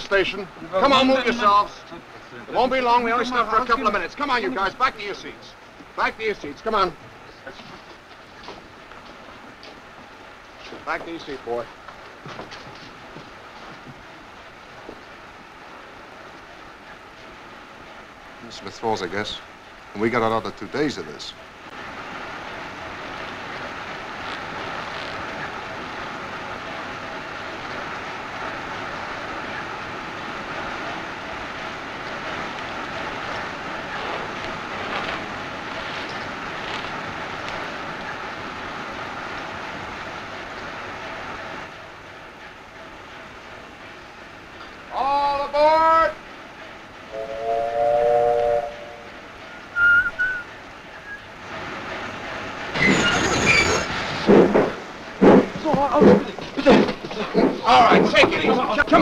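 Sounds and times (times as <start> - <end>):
men talking loudly: 0.0 - 7.9, 10.8 - 11.7, 18.4 - 21.4, 44.9 - 46.2, 55.6 - 59.0
steam train rumble and hiss: 0.0 - 59.0
train whistle chord: 47.1 - 51.2.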